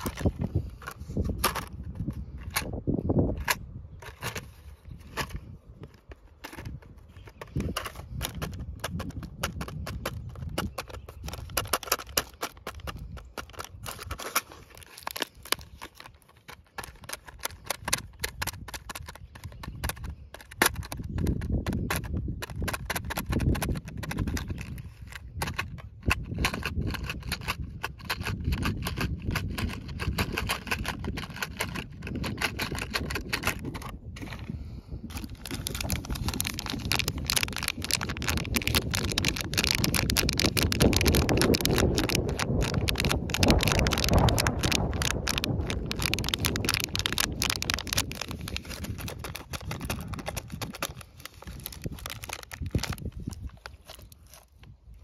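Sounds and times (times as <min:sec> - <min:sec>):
metal hooks rattling in plastic box: 0:00.0 - 0:34.4, 0:35.0 - 0:54.5.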